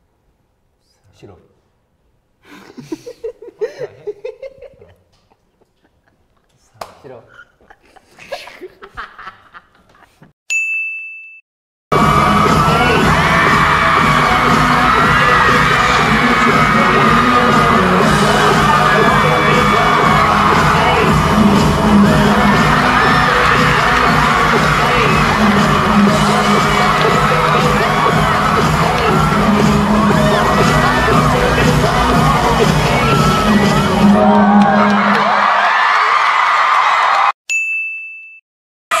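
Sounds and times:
short ding: 10.5s - 11.4s, 37.5s - 38.4s
live pop music: 11.9s - 35.1s
crowd screaming and cheering: 11.9s - 37.4s.

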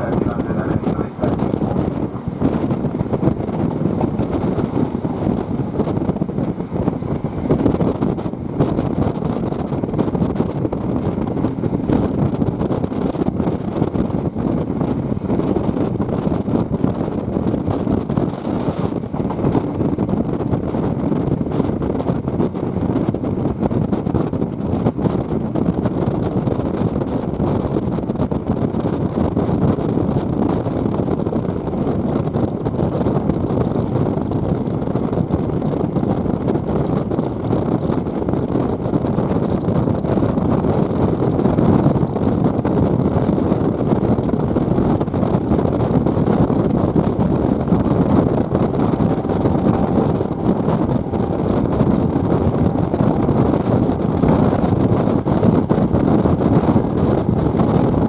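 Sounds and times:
train rumbling on track: 0.0s - 58.0s
wind buffeting microphone: 0.0s - 58.0s.

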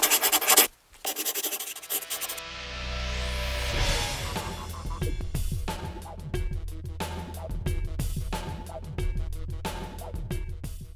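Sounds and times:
music with low bass drone: 2.5s - 10.9s.

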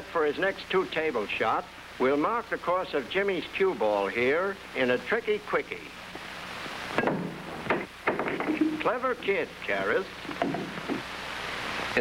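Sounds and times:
film soundtrack hiss: 0.0s - 12.0s
pool cue striking billiard ball: 7.0s - 8.9s.

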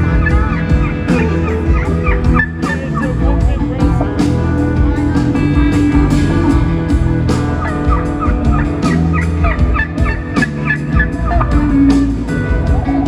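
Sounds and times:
live band music: 0.0s - 13.0s
imitation turkey gobbling: 0.2s - 3.2s, 7.6s - 11.6s.

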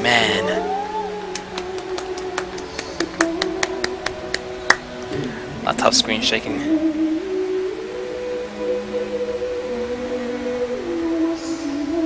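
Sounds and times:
woman singing a held note: 0.4s - 1.4s.

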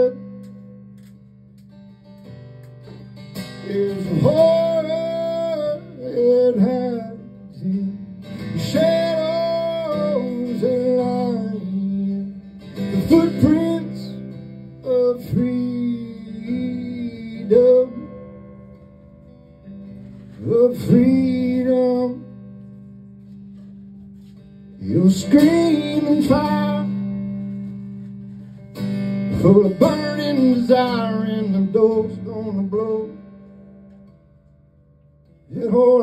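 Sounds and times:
acoustic guitar chord ringing: 0.0s - 36.0s.

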